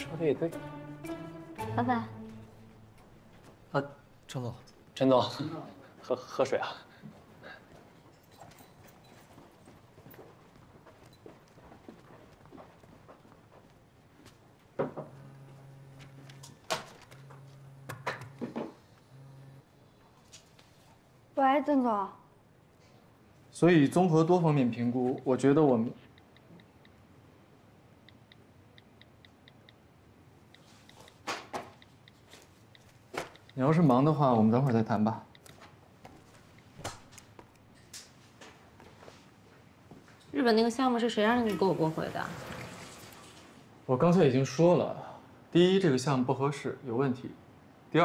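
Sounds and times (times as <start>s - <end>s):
faint footsteps on hard floor: 7.0s - 15.1s, 38.2s - 40.4s.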